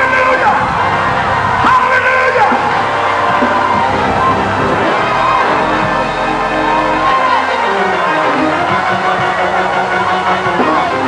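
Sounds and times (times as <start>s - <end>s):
church music: 0.0s - 11.0s
congregation voices: 0.0s - 11.0s.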